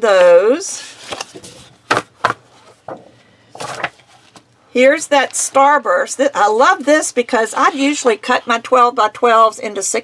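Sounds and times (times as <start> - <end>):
paper sheets rustling: 0.2 - 4.5.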